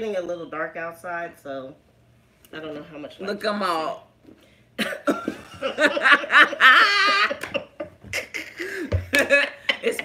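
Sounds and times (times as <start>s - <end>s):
women laughing: 4.8s - 9.9s.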